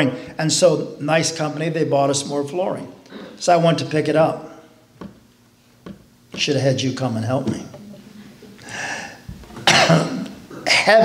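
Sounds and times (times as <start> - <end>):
man coughing: 9.6 - 11.0.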